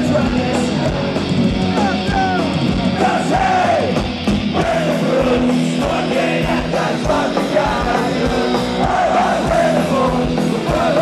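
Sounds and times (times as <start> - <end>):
punk rock band playing live: 0.0 - 11.0
shouted vocals: 1.6 - 4.0.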